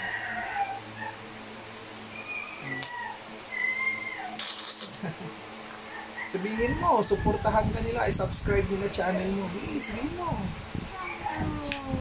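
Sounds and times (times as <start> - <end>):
small dog whining: 0.0 - 1.2, 2.1 - 4.9
low steady hum: 0.0 - 12.0.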